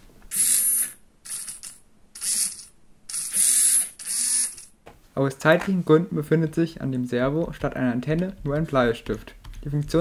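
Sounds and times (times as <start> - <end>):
servo gearbox whining: 0.3 - 4.7.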